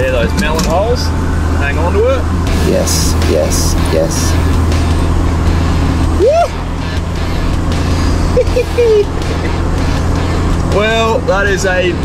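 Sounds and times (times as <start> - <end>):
vehicle engine droning: 0.0 - 12.0
person cheering: 6.2 - 6.7.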